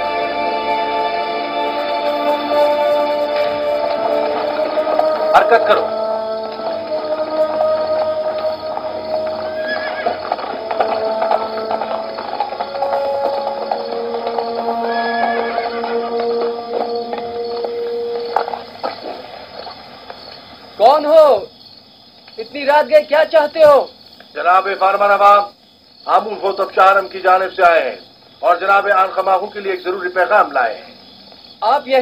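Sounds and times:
sustained music notes: 0:00.0 - 0:19.2
hooves clip-clopping: 0:00.0 - 0:21.4
horse neighing: 0:05.4 - 0:19.3.

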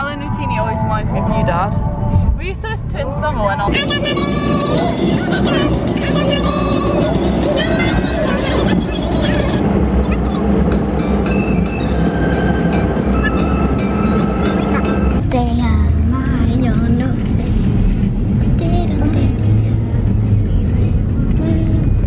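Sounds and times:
car driving rumble: 0:00.0 - 0:22.0
pop song with singing: 0:03.7 - 0:10.4, 0:18.4 - 0:19.8, 0:21.2 - 0:22.0.

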